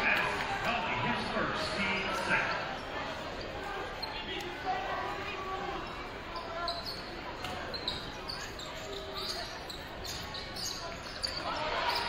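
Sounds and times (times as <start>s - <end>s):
murmur of crowd voices: 0.0s - 12.0s.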